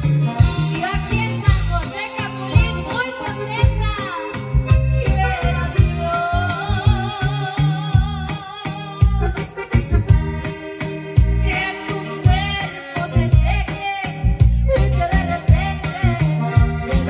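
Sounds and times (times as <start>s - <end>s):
music with bass and steady beat: 0.0s - 17.0s
woman singing into a microphone: 0.4s - 9.6s, 10.4s - 17.0s.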